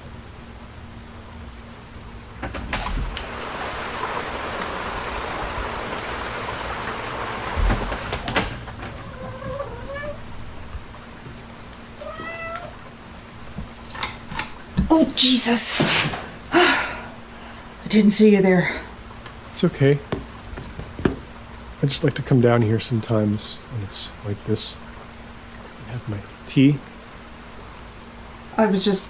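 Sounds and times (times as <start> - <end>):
steady low hum: 0.0 - 28.6
short squeaks: 8.9 - 10.3.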